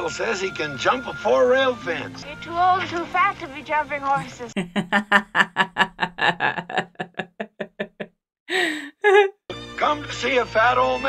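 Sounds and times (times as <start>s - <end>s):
woman laughing: 4.2s - 9.3s
breathy sound: 8.5s - 9.1s.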